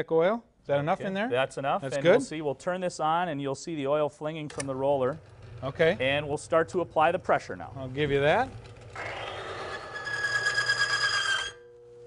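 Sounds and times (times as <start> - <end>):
high metallic squeal: 9.0 - 12.0
faint steady hum: 10.7 - 12.0.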